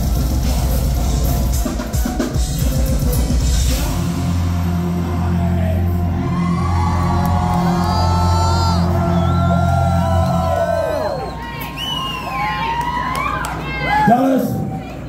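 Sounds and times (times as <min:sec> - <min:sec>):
metal band playing live: 0:00.0 - 0:06.1
crowd whooping and cheering: 0:04.7 - 0:15.0.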